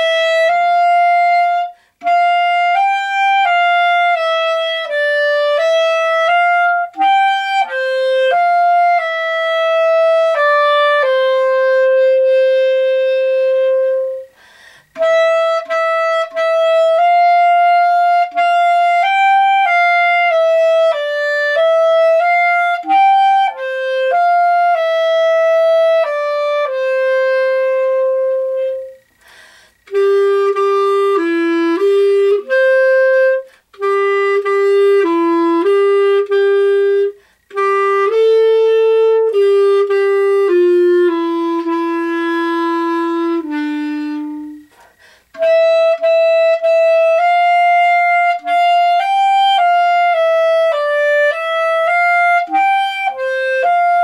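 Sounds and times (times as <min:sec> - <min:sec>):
solo clarinet melody: 0:00.0 - 0:54.0.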